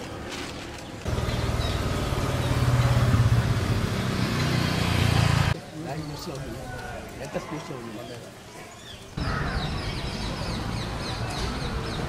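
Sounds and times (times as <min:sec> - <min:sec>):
scooter engine running: 0:01.1 - 0:05.6.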